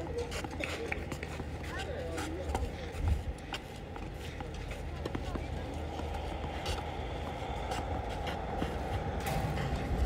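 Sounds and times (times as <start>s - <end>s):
low outdoor rumble: 5.5s - 10.0s.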